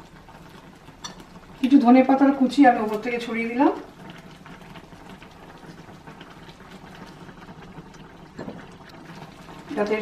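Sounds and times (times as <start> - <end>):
curry simmering in a pan: 0.0 - 10.0.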